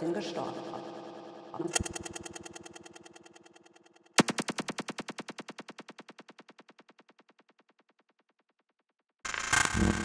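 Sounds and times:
rapid stuttering audio loop: 9.3 - 10.0.

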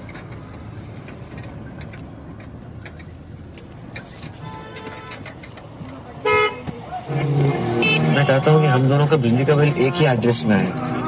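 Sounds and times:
road and engine noise in cabin: 0.0 - 11.0
vehicle horn honking: 4.4 - 5.3, 6.2 - 8.4, 9.5 - 11.0.

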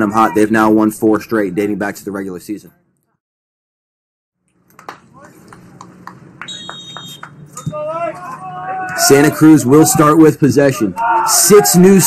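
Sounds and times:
man speaking: 0.0 - 2.8
referee's whistle blast: 6.4 - 7.3.

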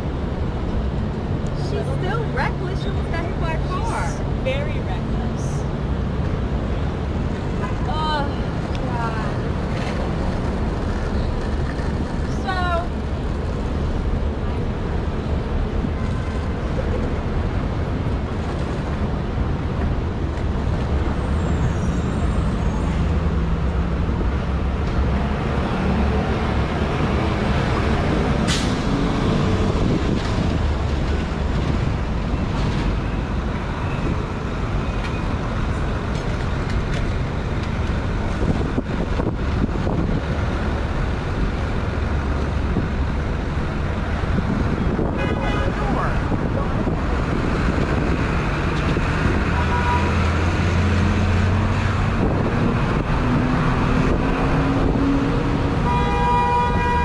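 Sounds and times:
city street traffic rumble: 0.0 - 57.0.

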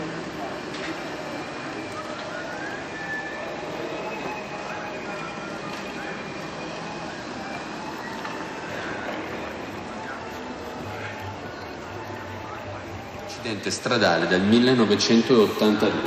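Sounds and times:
distant voices: 0.0 - 16.0
faint high whines: 0.0 - 16.0
traffic hum: 0.0 - 16.0.

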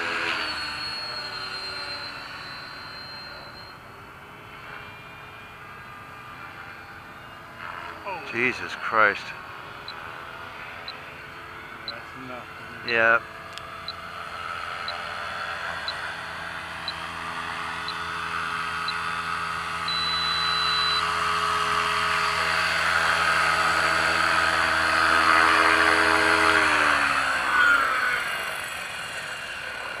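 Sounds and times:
rc helicopter motor whine: 0.0 - 30.0
long beep: 0.1 - 3.9, 15.7 - 21.2
short high beeps: 0.3 - 3.8, 19.9 - 21.1.

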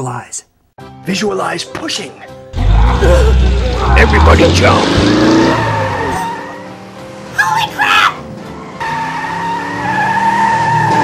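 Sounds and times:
tyres skidding: 2.5 - 11.0.

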